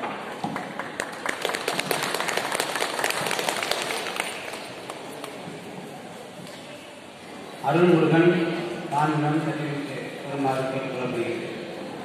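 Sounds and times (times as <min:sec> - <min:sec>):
audience applauding: 0:00.5 - 0:04.7.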